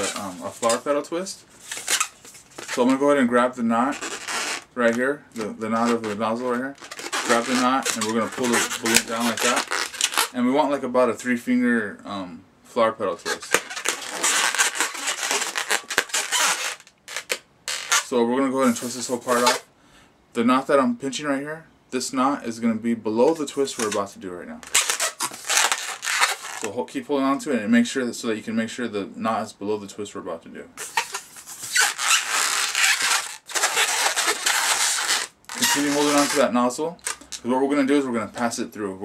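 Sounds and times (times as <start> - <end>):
balloon rubbing against hands: 0.0 - 0.9, 1.6 - 3.0, 3.8 - 10.4, 13.2 - 19.7, 24.6 - 26.7, 30.8 - 36.5.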